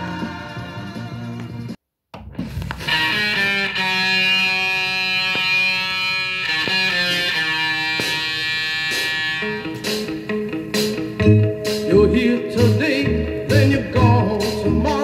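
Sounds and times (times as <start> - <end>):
guitar-led instrumental intro: 0.0 - 15.0
soul record playing on turntable: 0.0 - 15.0.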